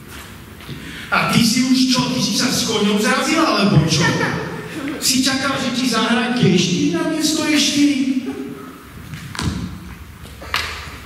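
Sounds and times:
person speaking: 1.0 - 8.9.

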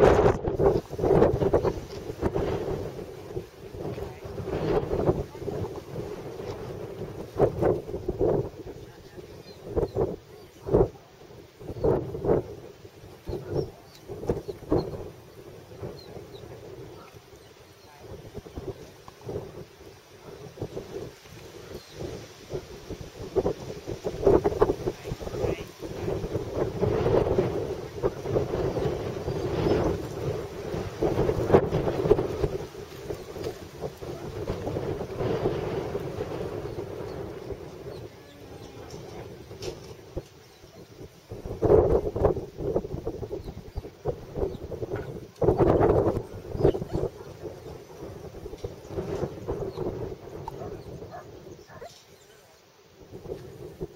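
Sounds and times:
wind buffeting microphone: 0.0 - 53.9.

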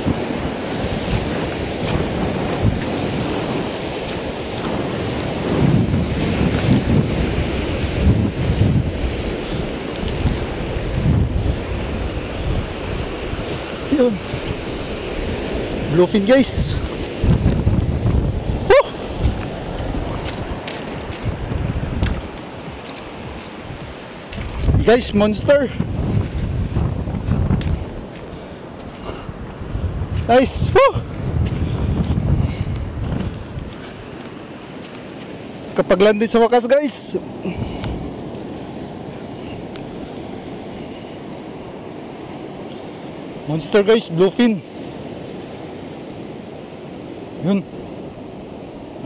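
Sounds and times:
surf washing in: 0.0 - 49.0
wind buffeting microphone: 0.0 - 49.0
brief voice-like call: 18.7 - 19.0, 30.7 - 31.0.

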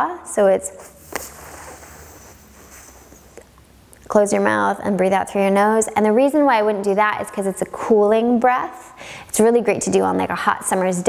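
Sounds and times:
hissing in-breath: 1.1 - 3.2.

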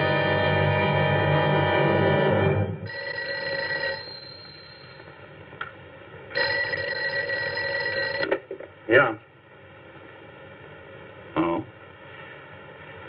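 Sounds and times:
telephone bell ringing: 2.9 - 5.3, 6.4 - 8.4.

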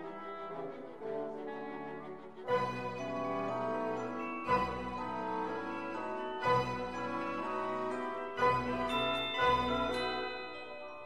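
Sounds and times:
sustained chord music: 0.0 - 11.0.

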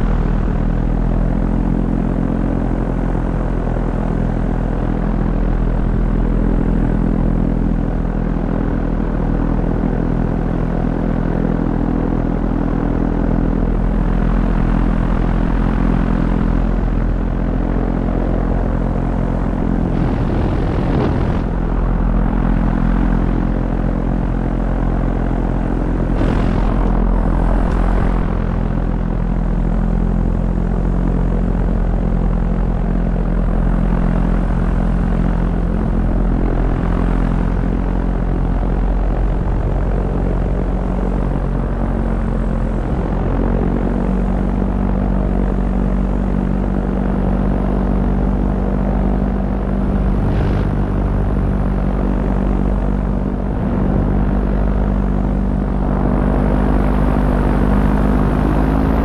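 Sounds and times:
propeller aircraft engine droning: 0.0 - 59.0
wind rushing: 19.4 - 23.5, 25.2 - 29.7, 49.4 - 52.2.

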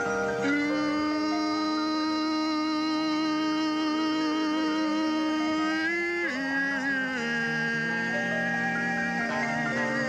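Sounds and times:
sustained instrumental chord: 0.0 - 10.0.

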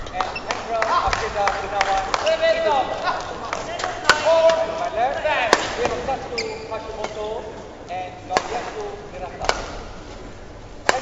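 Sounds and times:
shoes squeaking on court floor: 0.0 - 1.4, 2.0 - 7.6
racket hitting shuttlecock: 3.1 - 6.1, 8.3 - 10.0, 10.8 - 11.0.

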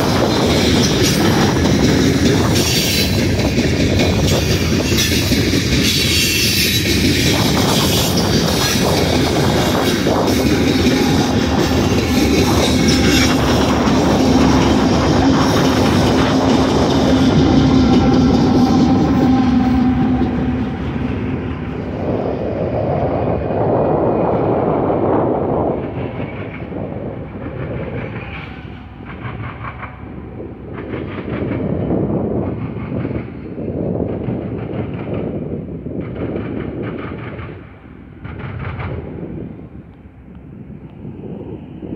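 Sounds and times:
train wheels clacking over rail joints: 0.0 - 22.0, 25.5 - 40.1
diesel locomotive drone: 0.0 - 41.9.

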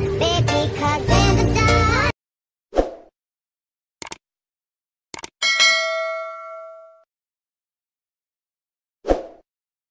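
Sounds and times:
quick clicks: 4.0 - 4.2, 5.1 - 5.4
bright bell ding: 5.4 - 7.1.

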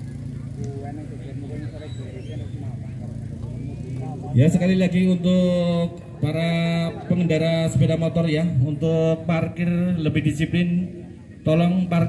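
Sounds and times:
faint chatter of voices: 0.0 - 4.8.

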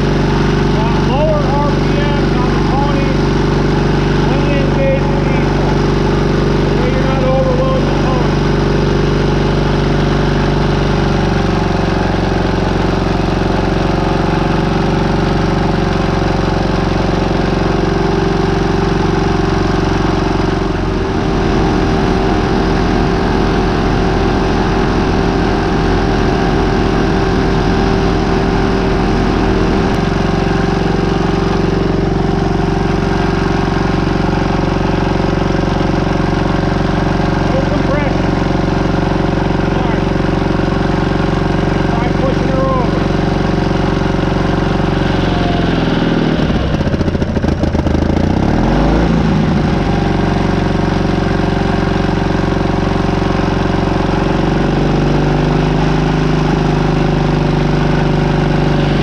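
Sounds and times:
rapid low pulsing: 0.0 - 11.6, 18.9 - 48.2
small engine running steadily: 0.0 - 59.0.

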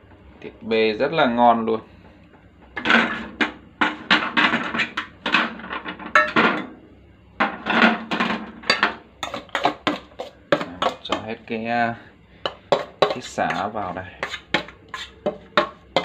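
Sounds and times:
metal tray clinking and knocking: 2.8 - 6.7
chopsticks scraping and tapping in pot: 9.2 - 11.3, 12.5 - 16.0.

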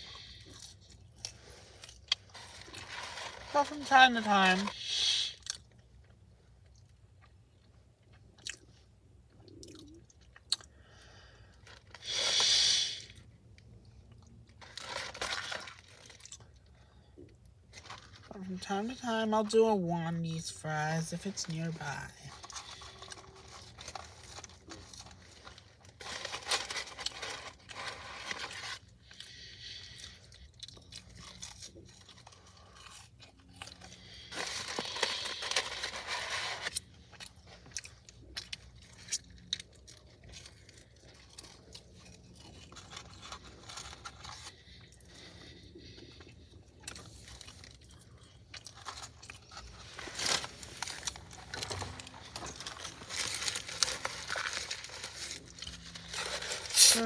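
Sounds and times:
person chewing fries: 0.0 - 3.5, 4.7 - 18.3, 22.3 - 57.0.

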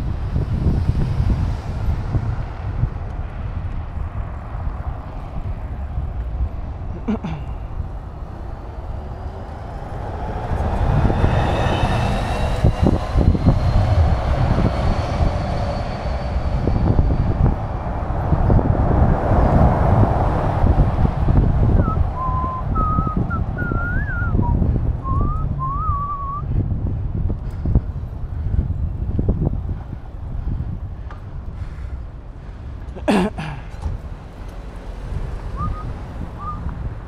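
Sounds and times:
road noise rumble: 0.0 - 37.0
wind buffeting microphone: 0.0 - 37.0
whistled tune: 21.8 - 26.4, 35.6 - 36.7.

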